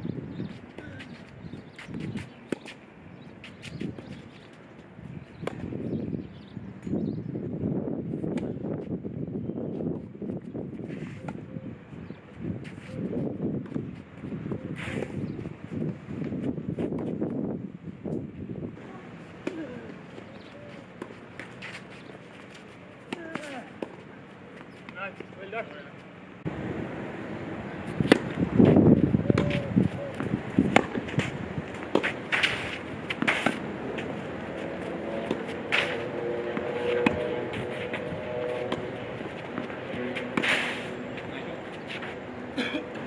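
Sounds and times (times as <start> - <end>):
tennis balls struck by racquets: 0.5 - 4.5, 5.3 - 6.0, 19.3 - 25.8, 27.8 - 43.0.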